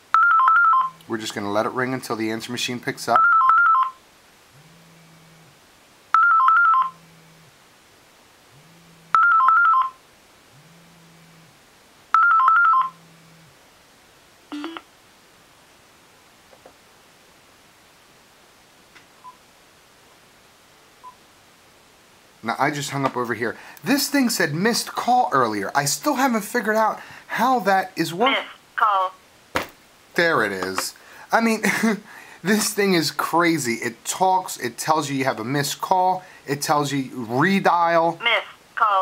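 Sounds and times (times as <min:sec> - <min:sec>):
phone ringing two-tone warble: 0:00.1 - 0:01.0, 0:03.2 - 0:04.0, 0:06.1 - 0:07.5, 0:08.6 - 0:10.0, 0:12.1 - 0:13.4
phone vibrate buzz: 0:03.4 - 0:07.6, 0:08.5 - 0:13.6, 0:14.5 - 0:14.9.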